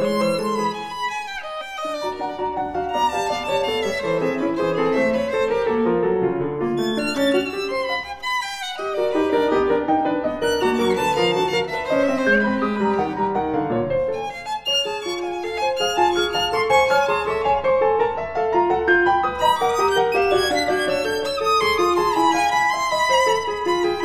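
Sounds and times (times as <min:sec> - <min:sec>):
violin and piano chamber music: 0:00.0 - 0:24.0.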